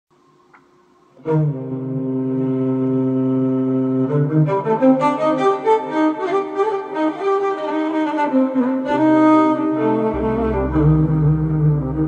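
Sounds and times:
electric violin long low note: 1.2 - 12.0.

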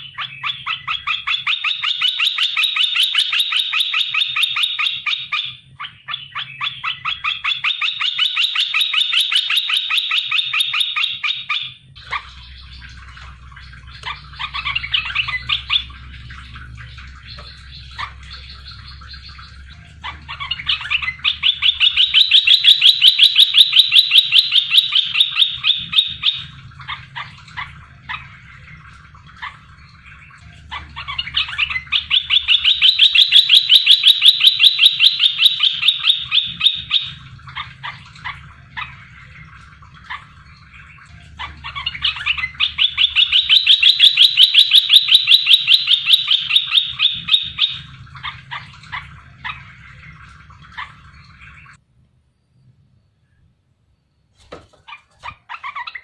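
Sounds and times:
bird song rapid runs of notes: 0.0 - 51.8.

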